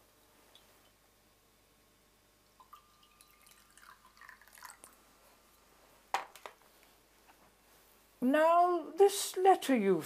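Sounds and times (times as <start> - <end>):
liquid trickling into glass: 2.6 - 5.1.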